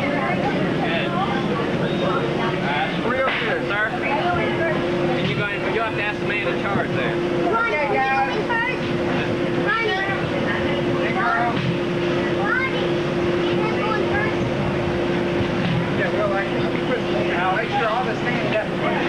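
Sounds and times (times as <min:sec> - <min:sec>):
steady hum: 0:00.0 - 0:19.0
young people talking and calling: 0:00.0 - 0:19.0.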